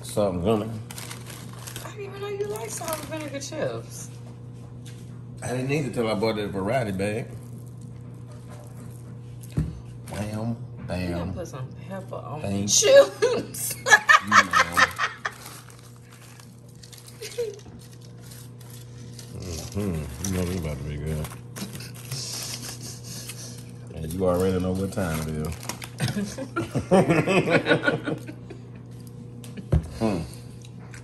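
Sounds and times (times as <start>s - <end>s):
chip bag crinkling: 0.3s - 3.8s, 14.3s - 26.5s.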